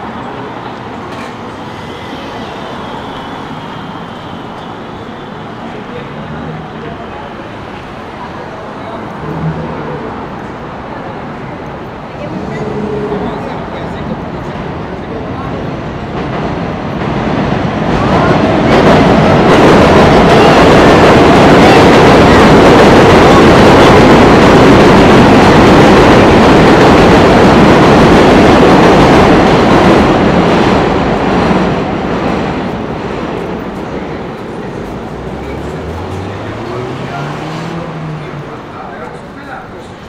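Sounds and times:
train rumbling over steel viaduct: 0.0s - 40.0s.

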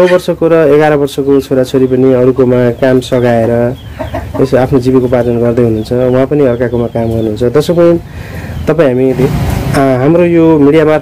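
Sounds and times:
short bird calls: 1.9s - 9.4s.

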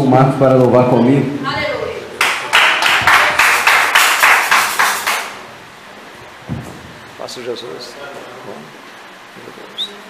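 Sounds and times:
rhythmic hand clapping: 2.2s - 5.4s
low thud: 6.4s - 7.0s.

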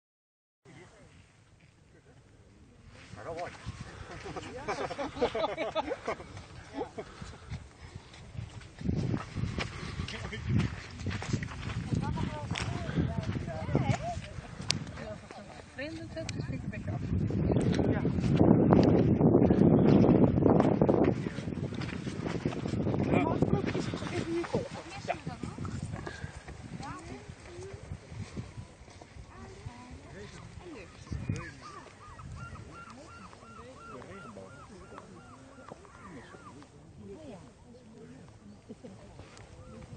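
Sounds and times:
people laughing and talking: 3.0s - 8.2s, 9.6s - 19.3s, 20.2s - 39.9s
microphone rumbling noise: 6.2s - 32.8s
distant voices talking and calling: 29.1s - 39.9s.

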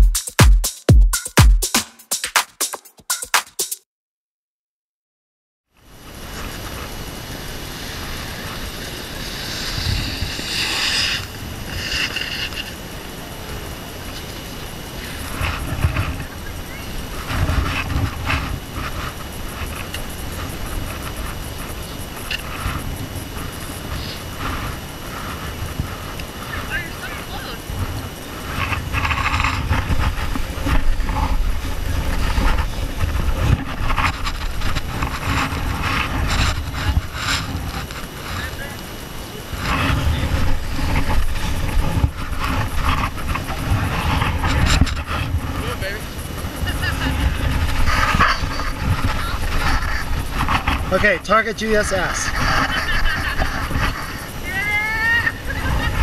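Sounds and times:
wind buffeting microphone: 5.9s - 56.0s.

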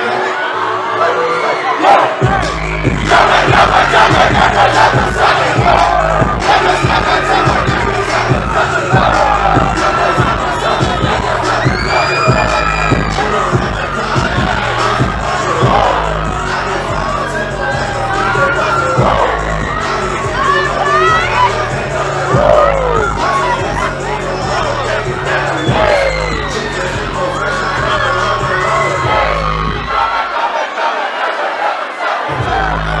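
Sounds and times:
crowd shouting and cheering: 0.0s - 33.0s
bass-heavy beat: 2.2s - 30.2s, 32.3s - 33.0s.

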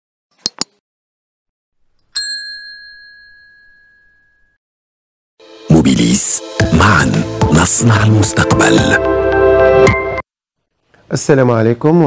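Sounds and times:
bell-like ding notification: 2.2s - 4.6s.

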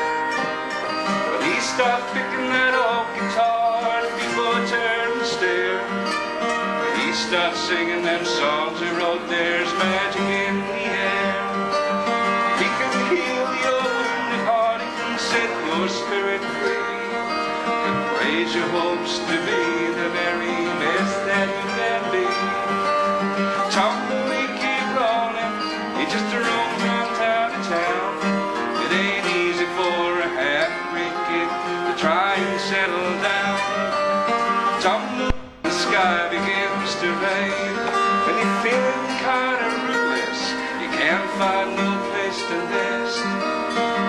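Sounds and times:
acoustic guitar playing: 0.0s - 44.0s.

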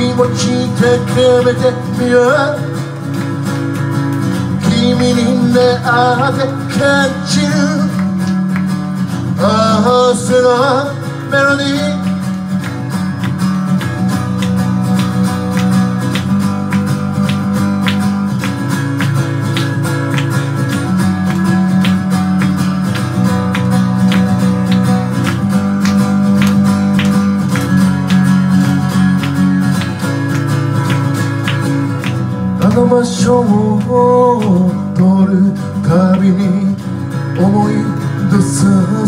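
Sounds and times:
acoustic guitar strumming chords: 0.0s - 39.0s.

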